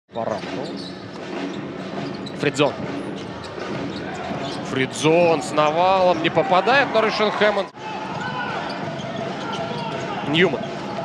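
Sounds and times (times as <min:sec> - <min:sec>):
arena crowd noise: 0:01.2 - 0:11.0.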